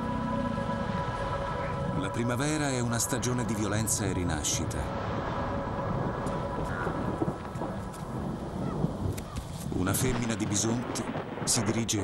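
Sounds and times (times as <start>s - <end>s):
low rumble of thunder: 5.0s - 12.0s.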